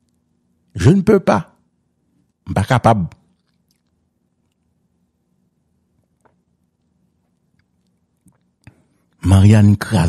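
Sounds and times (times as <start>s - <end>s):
faint low hum: 0.0s - 10.0s
man speaking: 0.8s - 1.6s, 2.4s - 3.2s, 9.2s - 10.0s.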